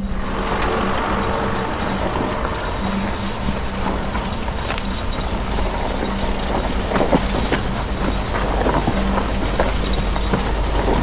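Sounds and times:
music: 0.0s - 11.0s
tractor engine hum: 0.0s - 11.0s.

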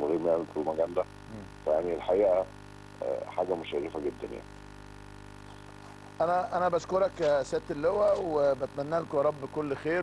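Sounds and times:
man speaking: 0.0s - 4.5s, 6.2s - 10.0s
electrical hum: 0.0s - 10.0s.

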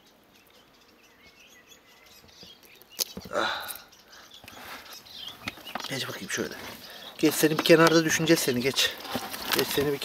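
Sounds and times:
faint bird chirps: 0.0s - 8.7s.

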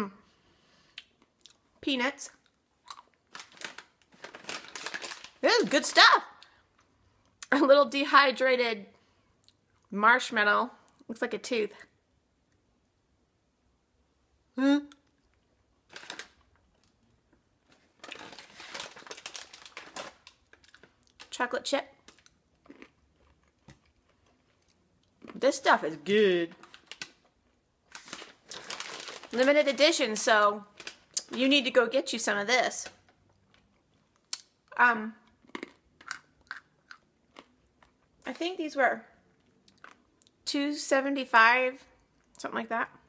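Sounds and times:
plastic snack bag crinkling: 2.4s - 6.9s, 15.8s - 32.1s
person chewing crunchy snack: 2.8s - 3.5s, 22.1s - 25.4s, 35.4s - 38.1s.

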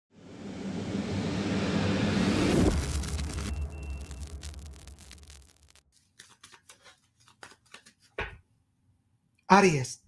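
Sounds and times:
rushing rumbling noise swell: 0.1s - 5.8s.

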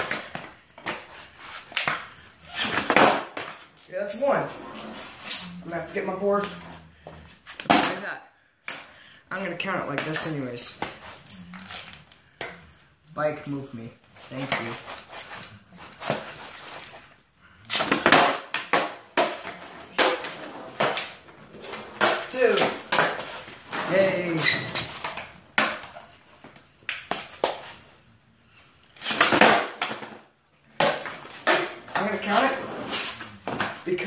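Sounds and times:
skateboard wheels rolling on concrete: 0.0s - 8.1s, 14.1s - 28.0s, 29.0s - 34.0s
skateboard pops and clacks: 1.7s - 3.6s, 17.7s - 21.2s, 29.0s - 30.2s
person speaking: 3.8s - 6.9s, 7.7s - 8.4s, 9.2s - 12.0s, 13.1s - 15.0s, 21.6s - 25.0s, 31.9s - 33.1s, 33.8s - 34.0s.

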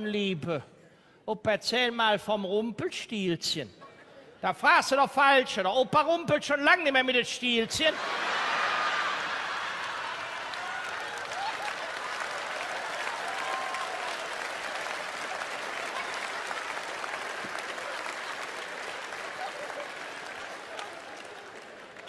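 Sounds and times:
audience laughing: 7.9s - 10.4s, 11.1s - 12.3s, 15.7s - 21.0s
audience applauding: 8.0s - 22.0s.

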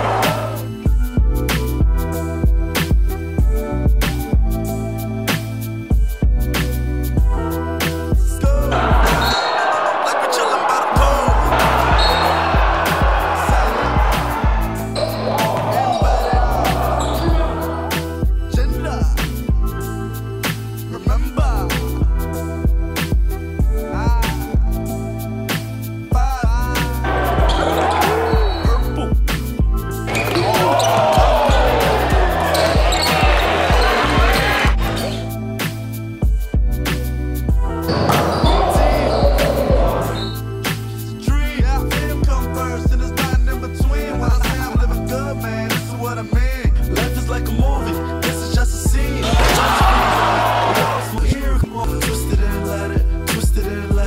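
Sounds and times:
basketball game audio: 0.0s - 1.0s, 8.7s - 18.4s, 26.8s - 35.8s, 37.9s - 40.9s, 48.9s - 52.5s
music with heavy bass beat: 0.0s - 9.3s, 10.8s - 54.0s.

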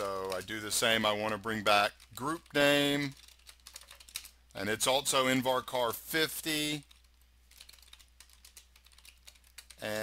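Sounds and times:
keyboard typing: 0.0s - 4.4s, 6.8s - 10.0s.

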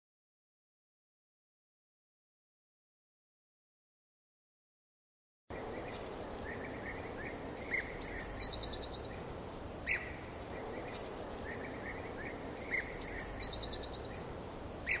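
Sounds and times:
birds chirping: 5.5s - 15.0s
outdoor background hiss: 5.5s - 15.0s.

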